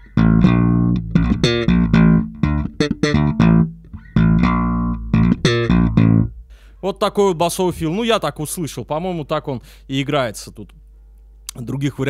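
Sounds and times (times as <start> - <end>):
funk bass guitar fill: 0.0 - 6.6.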